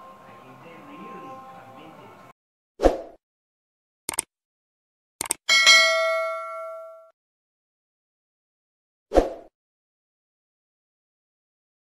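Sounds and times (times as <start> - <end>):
quick clicks: 4.1 - 4.3, 5.2 - 5.4
notification bell ding: 5.5 - 7.1.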